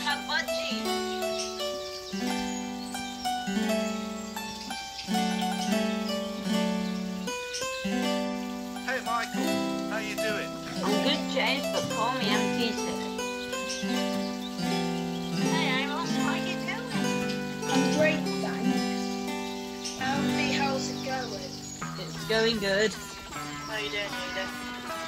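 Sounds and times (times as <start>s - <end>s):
recorded song chords and melody: 0.0s - 25.0s.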